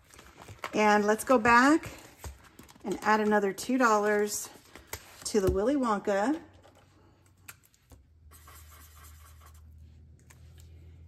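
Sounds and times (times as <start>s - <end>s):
paper scratching and rustling: 8.3s - 9.6s.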